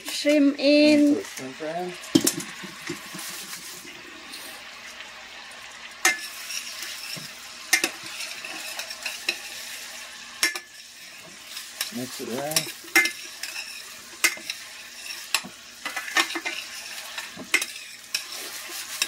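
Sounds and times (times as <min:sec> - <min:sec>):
butter sizzling in a frying pan: 0:00.0 - 0:19.0.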